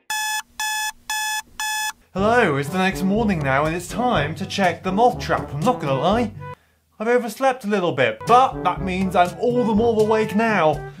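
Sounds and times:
alarm clock beeping: 0.0s - 2.0s.

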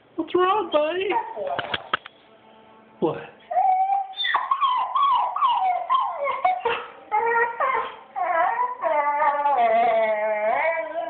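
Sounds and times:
dog whining howl: 3.5s - 11.0s.

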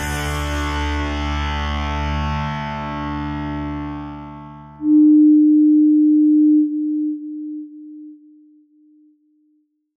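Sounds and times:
pure electronic tone: 4.8s - 9.6s.

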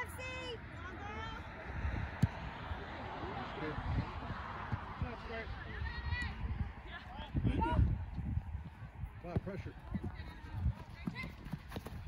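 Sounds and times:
ball being kicked: 2.2s - 2.5s
players running: 8.4s - 12.0s.

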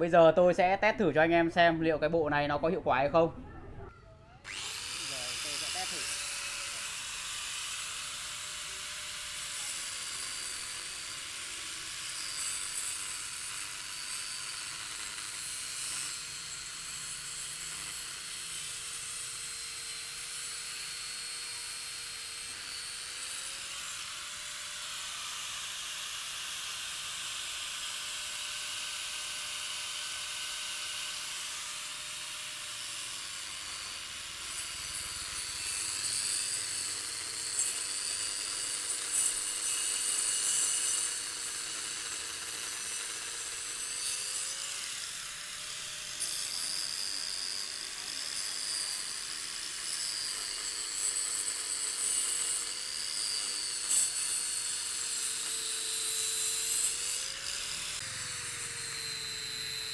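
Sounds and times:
angle grinder cutting brick: 4.4s - 59.9s.

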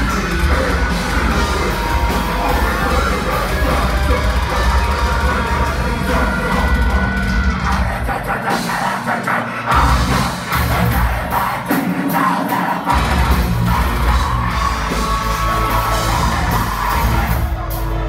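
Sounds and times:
bass guitar: 0.0s - 9.0s, 9.6s - 11.8s, 12.9s - 18.0s
distorted guitars: 0.0s - 18.0s
drums: 0.0s - 18.0s
vocals: 0.0s - 18.0s.

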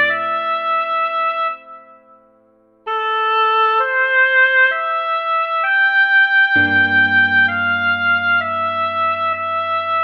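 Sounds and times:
synthesized oboe melody: 0.0s - 2.2s, 2.8s - 10.0s.

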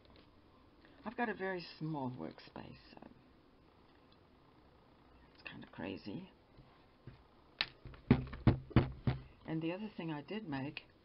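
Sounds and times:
knocks on a work table: 7.8s - 9.3s.

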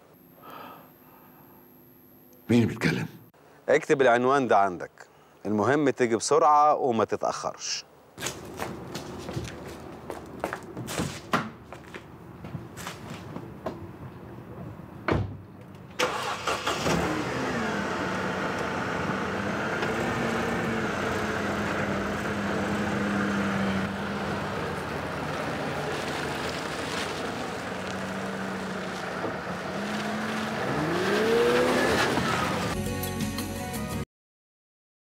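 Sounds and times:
car engine starting and running: 15.9s - 32.8s
car accelerating away: 16.0s - 32.8s.

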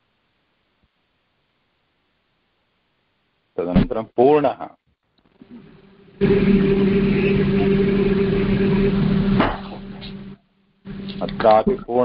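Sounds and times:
steady mechanical drone: 5.4s - 12.0s.

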